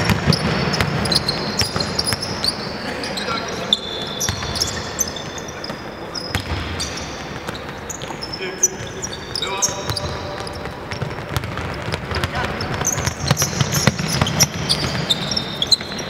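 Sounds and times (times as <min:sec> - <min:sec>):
sneaker squeaks: 0:00.0 - 0:16.0
basketball bouncing on hardwood: 0:09.9 - 0:15.1.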